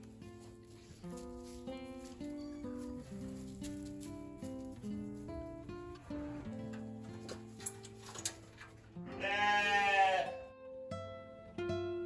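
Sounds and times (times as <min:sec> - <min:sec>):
acoustic guitar music: 0:00.0 - 0:12.0
sheep bleating: 0:09.1 - 0:10.5.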